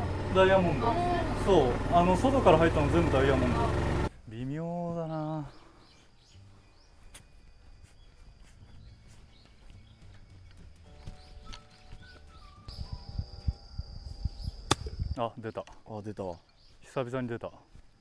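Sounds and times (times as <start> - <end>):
birds chirping: 0.0 - 18.0
golf club striking ball: 14.7 - 15.0.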